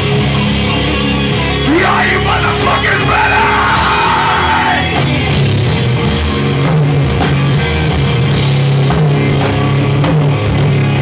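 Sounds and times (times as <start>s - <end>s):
metal band playing live: 0.0s - 11.0s
vocalist yelling held note: 1.7s - 5.0s.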